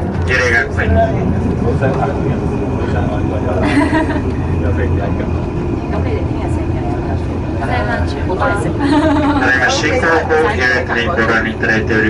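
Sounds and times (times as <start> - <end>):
passenger voices: 0.0 - 12.0
steady low rumble: 0.0 - 12.0
people laughing: 2.8 - 5.2, 8.4 - 11.1.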